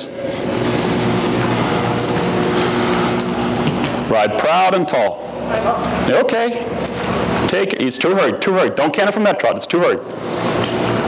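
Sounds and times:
motor-like hum: 0.0s - 11.0s.

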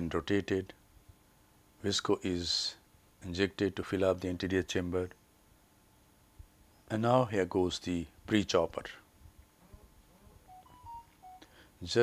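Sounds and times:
faint short electronic beeps: 10.4s - 11.5s.

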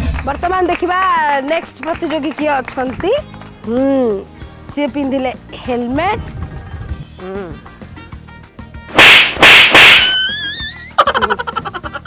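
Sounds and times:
whip-like swishes: 9.0s - 10.2s.

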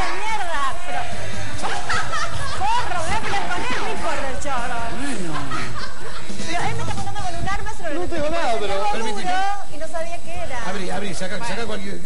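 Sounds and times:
background music: 0.0s - 11.5s
voices talking and exclaiming: 0.0s - 12.0s.

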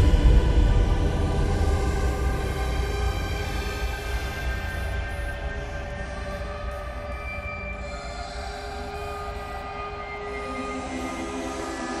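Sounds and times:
deep low rumble: 0.0s - 3.6s.

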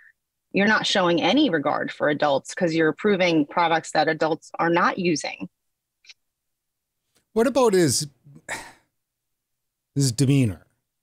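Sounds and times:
man speaking: 7.3s - 8.7s, 10.0s - 10.7s.

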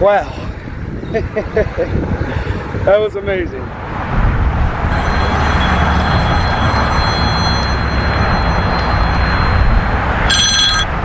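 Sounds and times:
wind buffeting microphone: 0.0s - 11.0s
smartphone ring tone: 4.9s - 11.0s.

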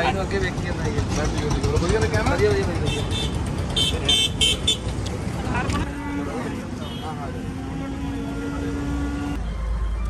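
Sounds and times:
traffic: 0.0s - 10.0s.

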